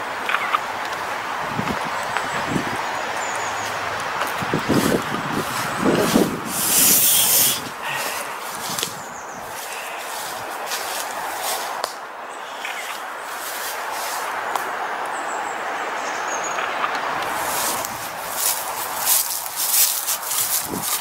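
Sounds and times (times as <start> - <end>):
outdoor background hiss: 0.0 - 21.0
footsteps through grass and leaves: 0.3 - 14.8, 17.2 - 21.0.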